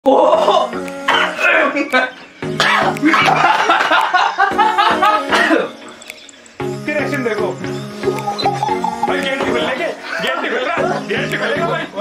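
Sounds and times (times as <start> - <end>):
background music: 0.0 - 12.0
young men laughing and talking: 1.4 - 12.0.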